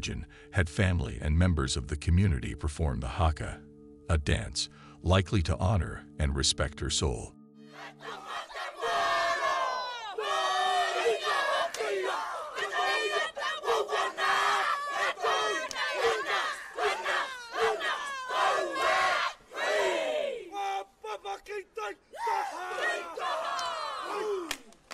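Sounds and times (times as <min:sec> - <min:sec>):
group shouting and chanting: 0:07.7 - 0:24.7.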